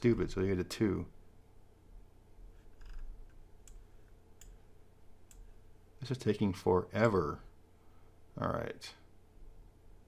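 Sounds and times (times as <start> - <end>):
faint steady hum: 0.0 - 10.0
computer mouse clicks: 2.6 - 4.6, 5.3 - 5.5.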